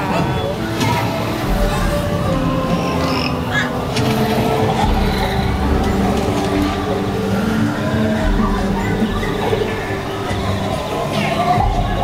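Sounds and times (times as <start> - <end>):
held music-like tones: 0.0 - 12.0.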